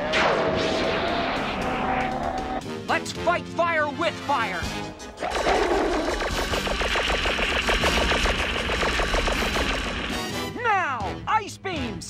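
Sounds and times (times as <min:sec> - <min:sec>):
music: 0:00.0 - 0:12.0
rapid rattling blast effect: 0:05.2 - 0:10.6.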